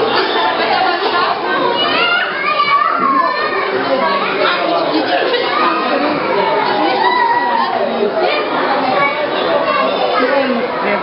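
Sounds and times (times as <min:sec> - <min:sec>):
crowd of voices talking: 0:00.0 - 0:11.0.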